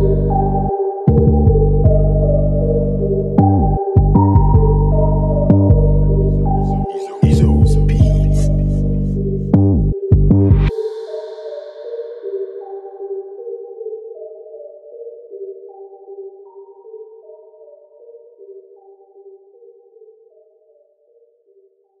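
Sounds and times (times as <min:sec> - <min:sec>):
synth melody: 0:00.0 - 0:17.7.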